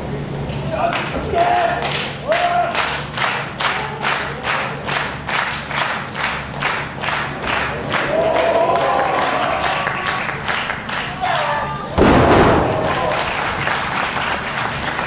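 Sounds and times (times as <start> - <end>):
crowd clapping in unison: 0.4 - 15.0
long drawn-out shout: 7.8 - 10.5, 12.6 - 13.5.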